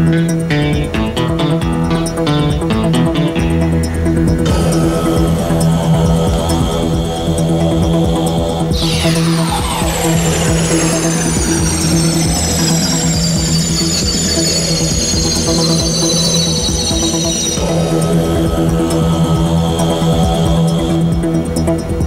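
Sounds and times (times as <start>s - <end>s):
synthesizer drone: 0.0s - 22.0s
high sliding synth tones: 4.4s - 22.0s.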